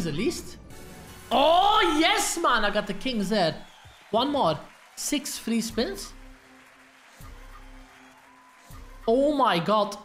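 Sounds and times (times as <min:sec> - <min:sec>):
slot game background music: 0:00.0 - 0:03.1.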